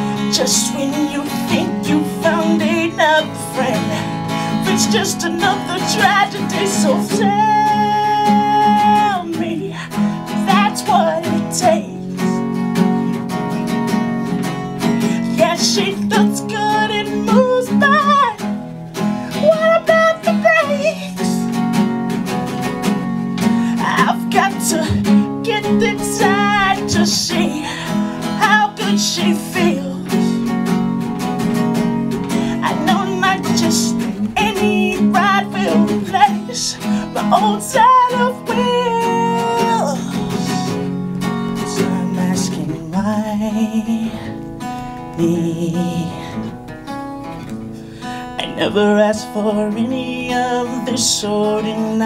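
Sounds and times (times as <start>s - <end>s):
man singing: 0.0s - 12.7s, 14.4s - 21.8s, 23.4s - 30.7s, 31.8s - 46.6s, 48.3s - 52.0s
acoustic guitar strummed: 0.0s - 52.0s.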